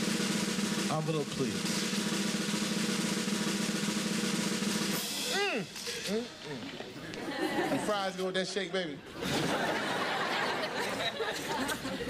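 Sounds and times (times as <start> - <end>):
snare drum roll: 0.0 - 6.1.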